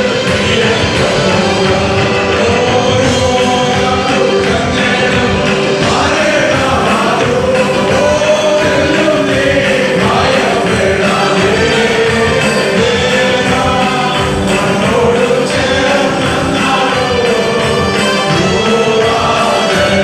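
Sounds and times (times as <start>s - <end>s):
choir singing a gospel hymn: 0.0s - 20.0s
instrumental accompaniment with beat: 0.0s - 20.0s.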